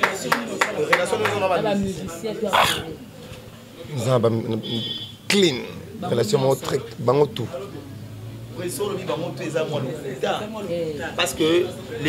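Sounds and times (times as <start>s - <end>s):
sharp breathy vocal sound: 2.5s - 3.0s.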